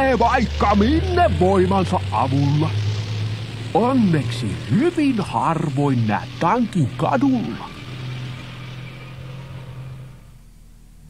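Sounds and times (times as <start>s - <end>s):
tank engine rumble: 0.0s - 11.0s.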